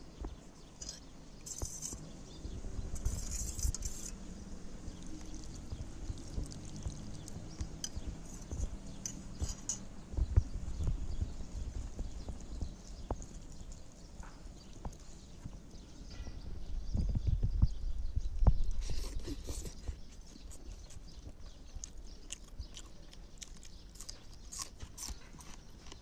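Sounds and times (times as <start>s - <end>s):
wet chewing: 4.9s - 9.7s, 18.8s - 26.0s.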